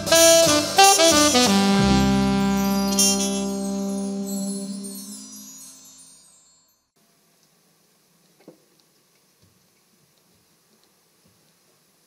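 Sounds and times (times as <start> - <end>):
jazz combo final chord: 0.0 - 5.6
shimmering chime ringing: 1.8 - 6.9.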